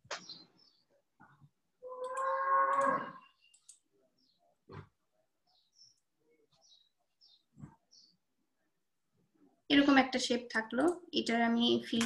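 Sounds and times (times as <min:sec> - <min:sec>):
drawn-out pitched call: 0:01.8 - 0:03.2.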